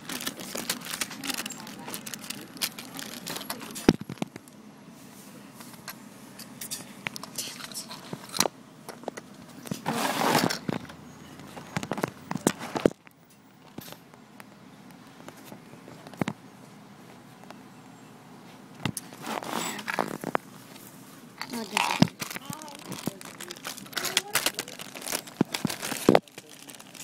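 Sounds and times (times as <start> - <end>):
plastic bags crinkling: 0.0 - 4.4, 19.1 - 20.4, 21.4 - 27.0
plastic parts clicking and scraping: 0.0 - 4.5, 5.7 - 14.0, 18.8 - 20.4, 21.4 - 27.0.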